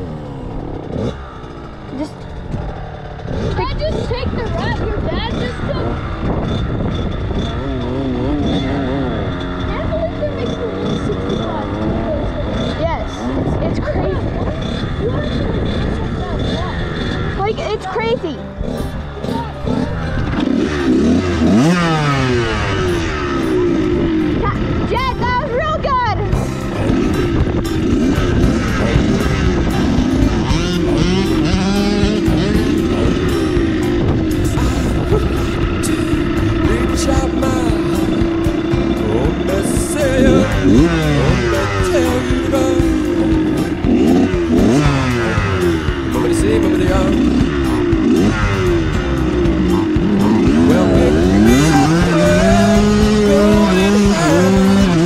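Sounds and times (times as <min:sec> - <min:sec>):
dirt bike engines revving: 0:00.0 - 0:55.0.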